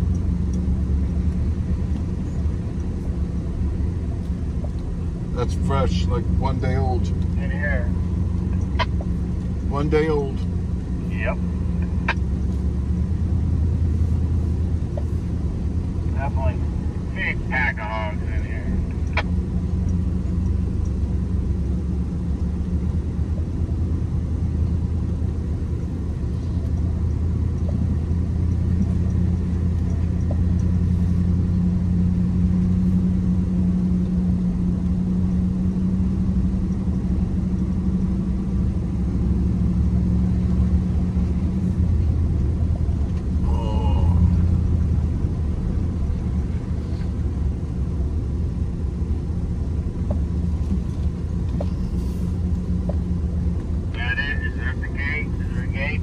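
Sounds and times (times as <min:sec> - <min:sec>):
truck engine running: 0:00.0 - 0:56.0
faint voices: 0:54.0 - 0:56.0.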